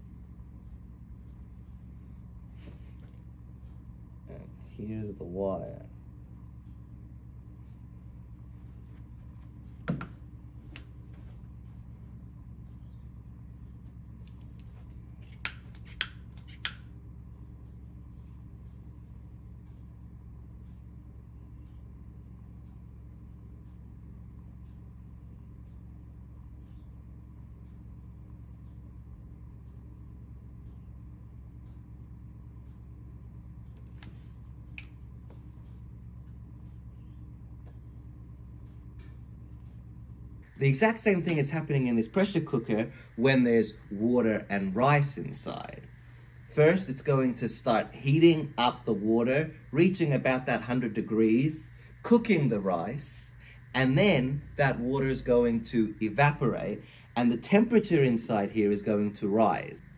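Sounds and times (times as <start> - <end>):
low electrical hum: 0.0 - 59.9.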